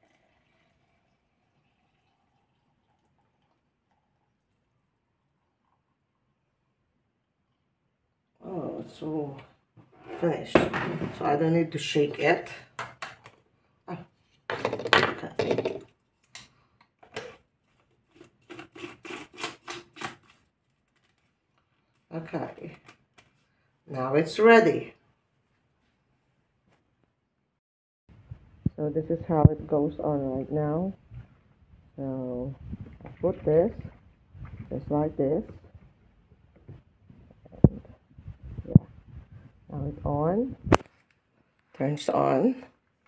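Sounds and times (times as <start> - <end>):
blender jar handling noise: 18.1 - 20.4.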